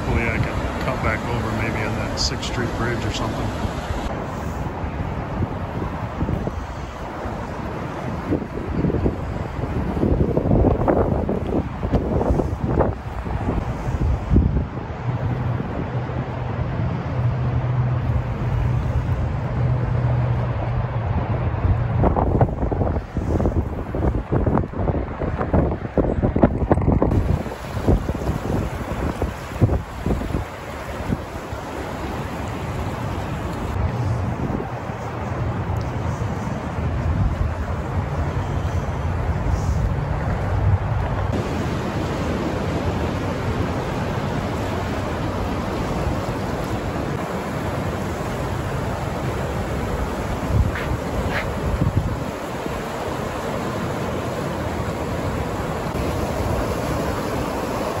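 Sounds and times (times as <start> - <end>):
river water rushing: 0.0 - 25.5, 27.0 - 58.0
wind buffeting microphone: 0.0 - 58.0.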